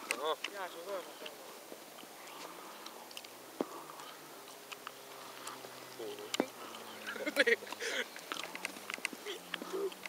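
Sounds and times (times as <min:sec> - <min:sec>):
small clicks: 0:07.7 - 0:10.0.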